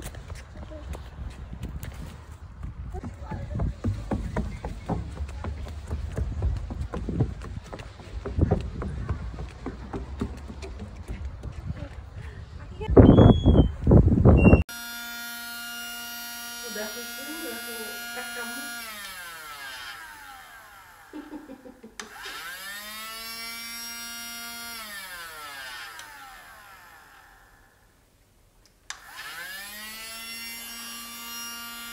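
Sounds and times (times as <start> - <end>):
loud rough outdoor noise: 13.9 - 21.2, 22.0 - 28.0
small vacuum motor whining: 14.7 - 21.2, 22.0 - 27.8, 28.9 - 31.9.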